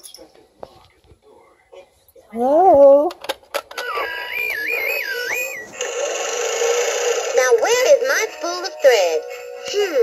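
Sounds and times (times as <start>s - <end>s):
toy speaker tone: 3.8s - 6.0s
whirring sewing machine effect: 5.4s - 8.3s.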